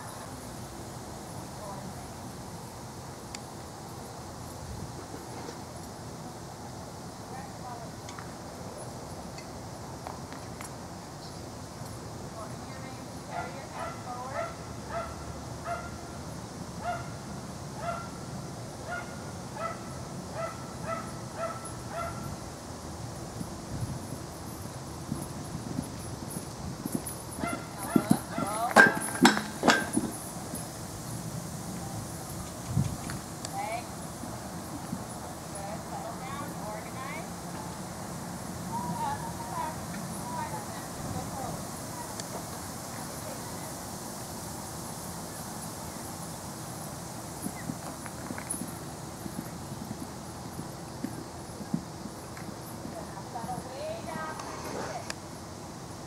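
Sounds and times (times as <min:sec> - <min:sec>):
steady background hiss: 0:00.0 - 0:56.0
horse hoofbeats on sand: 0:23.9 - 0:30.7, 0:47.3 - 0:55.0.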